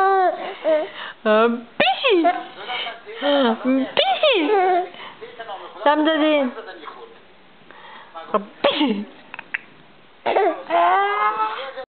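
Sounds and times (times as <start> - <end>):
baby squealing: 10.3 - 11.7.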